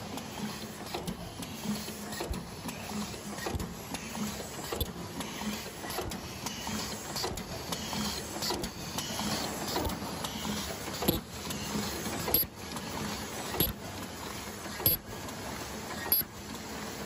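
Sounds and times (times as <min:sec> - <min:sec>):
machine rhythmic clatter: 0:00.0 - 0:17.0
sharp machine clicks: 0:03.4 - 0:13.8, 0:14.7 - 0:15.1, 0:16.0 - 0:16.3.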